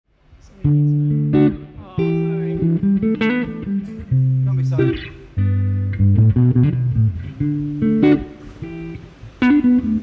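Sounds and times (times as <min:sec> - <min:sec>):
electric guitar chords: 0:00.5 - 0:10.0.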